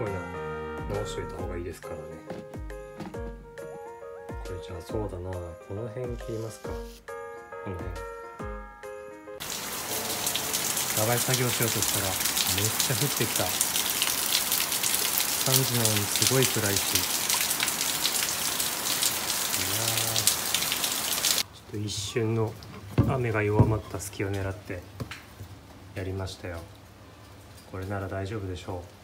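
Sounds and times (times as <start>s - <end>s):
background music: 0.0s - 10.6s
rain on concrete: 9.4s - 29.0s
low voice: 19.6s - 20.2s.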